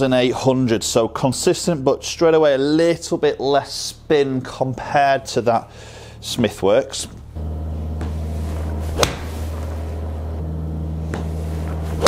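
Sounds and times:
low hum: 3.2 - 12.0
golf club striking ball: 8.0 - 9.7.

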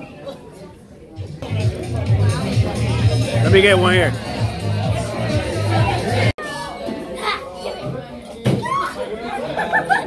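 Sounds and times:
girls playing and talking: 4.1 - 10.0.

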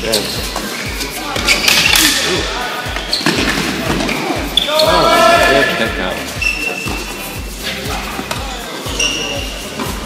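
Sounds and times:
people chattering: 0.0 - 10.0
tennis balls hit and bouncing: 0.6 - 4.8.

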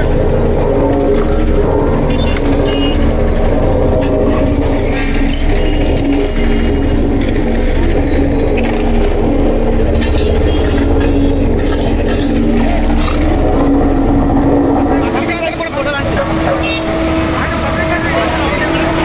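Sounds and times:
crowd voices: 0.0 - 19.0
engine running: 0.0 - 19.0.

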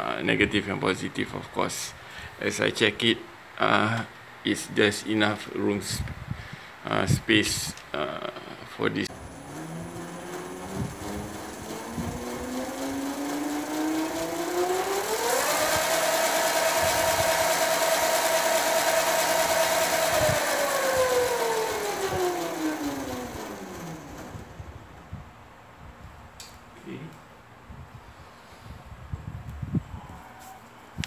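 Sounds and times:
electric motor whine: 9.1 - 24.9.

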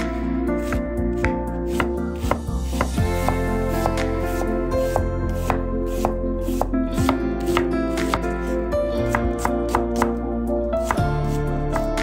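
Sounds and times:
background music: 0.0 - 12.0
knife slicing onion on board: 0.6 - 10.2, 10.8 - 12.0.

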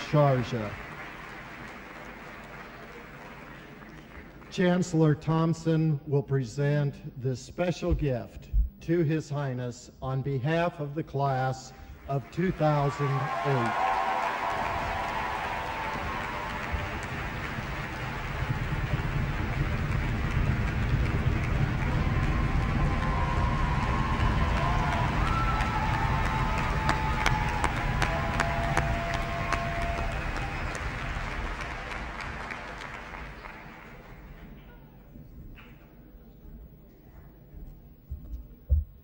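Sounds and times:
large audience applauding: 0.0 - 4.8, 12.0 - 34.8.

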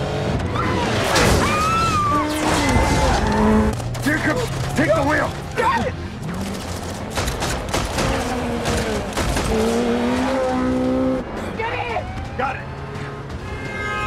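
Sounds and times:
motorcycle engines revving: 0.0 - 1.2, 7.9 - 14.0
rapid gunshots: 7.0 - 9.9
car speeding on road: 8.2 - 14.0.

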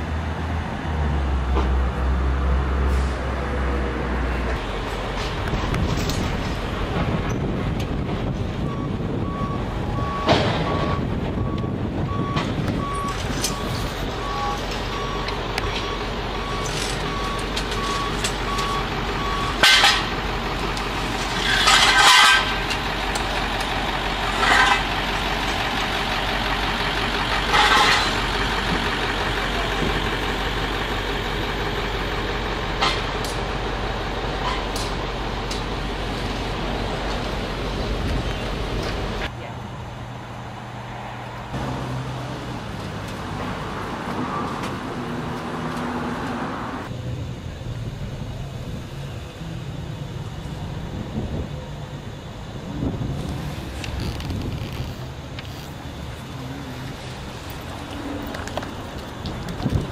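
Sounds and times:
street traffic and engines: 0.0 - 59.9
reversing alarm beeping: 8.6 - 20.2.

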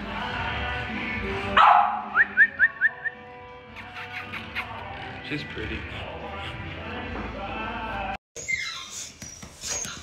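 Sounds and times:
background music: 0.0 - 8.2.

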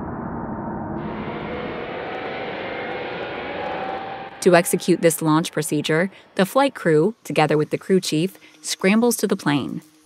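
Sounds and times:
jet engines roaring: 1.0 - 7.6.

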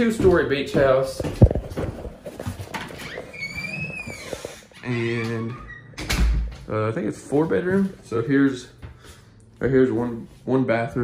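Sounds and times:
light knocks and steps: 0.0 - 4.6, 5.2 - 11.0
high squeak: 3.1 - 6.0.

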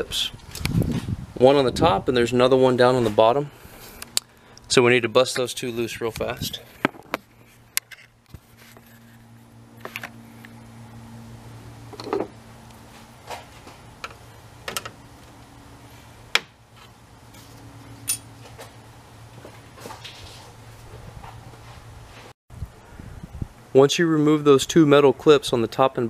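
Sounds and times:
steady low hum: 0.0 - 23.8.

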